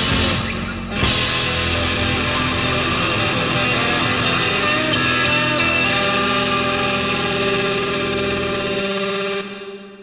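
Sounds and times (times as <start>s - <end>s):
distorted electric guitars droning: 0.0s - 10.0s.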